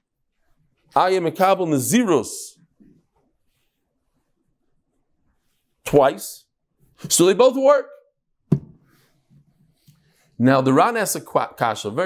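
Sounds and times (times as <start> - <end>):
man talking: 0.9 - 2.6, 5.9 - 6.4, 7.0 - 8.0, 10.4 - 12.0.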